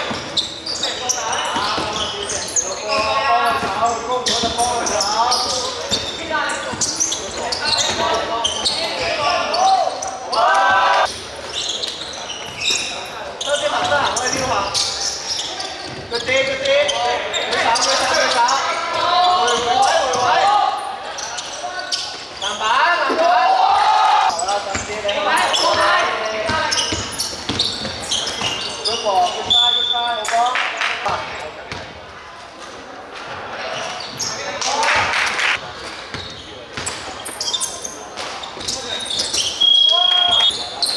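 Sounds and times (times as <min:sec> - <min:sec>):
people shouting: 0:09.2 - 0:11.1, 0:23.1 - 0:24.3
basketball bouncing on wooden court: 0:26.4 - 0:28.5.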